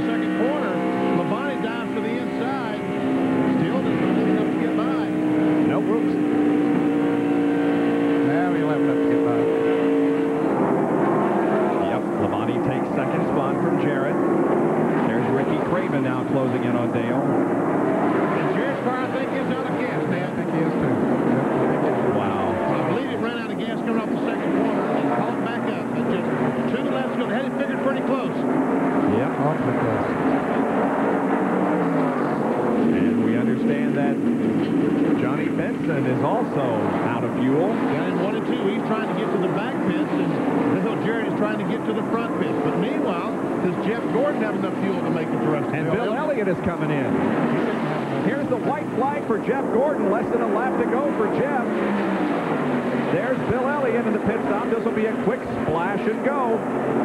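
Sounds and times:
race car engines passing: 0:00.0 - 0:57.0.

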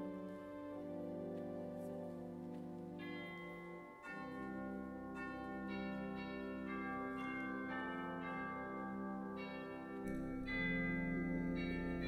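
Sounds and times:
church organ playing: 0:00.0 - 0:12.0.

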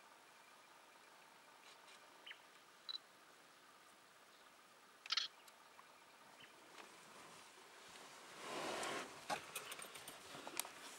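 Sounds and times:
background hiss: 0:00.0 - 0:10.9.

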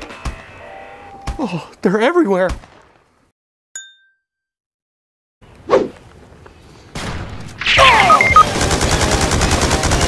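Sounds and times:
bell-like ding: 0:03.8 - 0:04.5.

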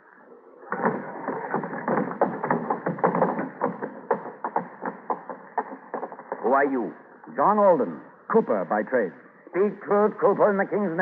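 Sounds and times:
hurried footsteps knocks and clatter: 0:00.7 - 0:06.6.

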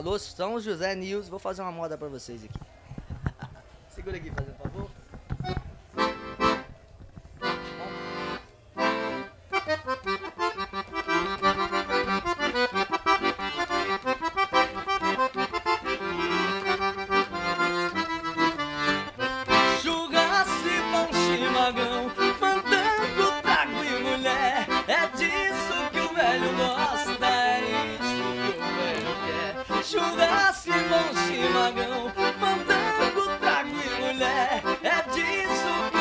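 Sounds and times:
accordion playing lively tune: 0:05.4 - 0:06.8, 0:07.4 - 0:36.0
man singing: 0:19.7 - 0:36.0.

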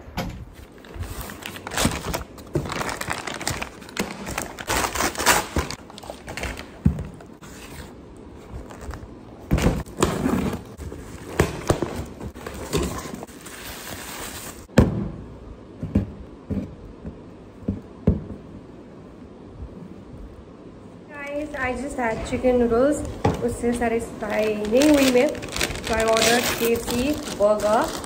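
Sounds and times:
paper tearing and crinkling: 0:01.0 - 0:06.7, 0:24.3 - 0:28.0.

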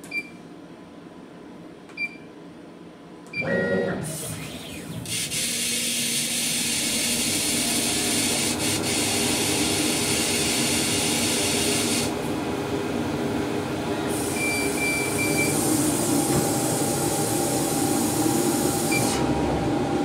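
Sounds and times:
short beep: 0:14.4 - 0:15.6.

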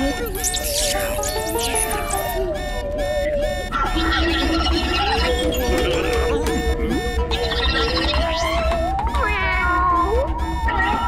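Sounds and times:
wavering voice-like tone gliding: 0:00.0 - 0:08.6
cartoon background music: 0:00.0 - 0:11.0.

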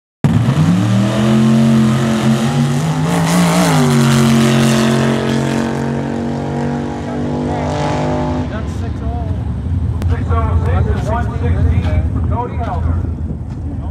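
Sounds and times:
drag car engine at full throttle: 0:00.2 - 0:13.9
voices: 0:08.4 - 0:13.9.

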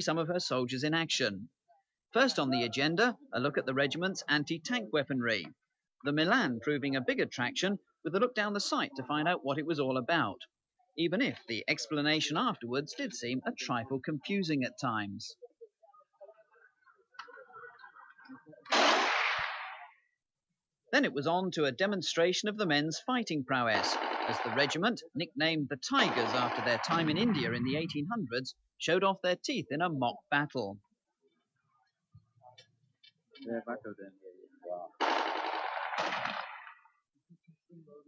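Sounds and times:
faint indistinct murmuring: 0:15.3 - 0:18.8
automatic weapon bursts: 0:18.7 - 0:19.5, 0:23.8 - 0:24.8, 0:35.0 - 0:36.7
loud blank gunshot bang: 0:18.7 - 0:19.8.

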